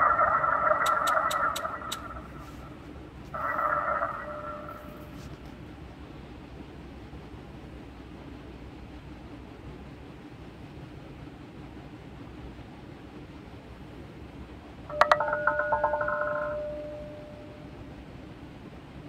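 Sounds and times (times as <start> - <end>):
steady low hiss: 0.0 - 19.0
rapid ringing rattle: 14.9 - 17.7.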